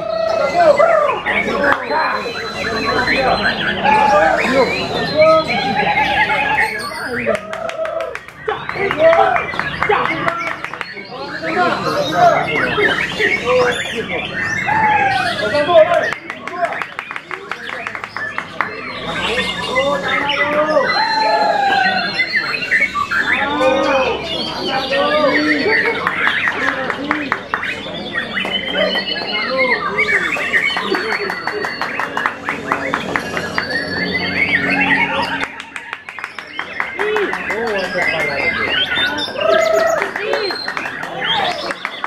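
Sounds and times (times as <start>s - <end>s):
bird singing varied song: 0.0s - 7.6s, 8.2s - 42.0s
buzzy bird trill: 27.7s - 41.9s.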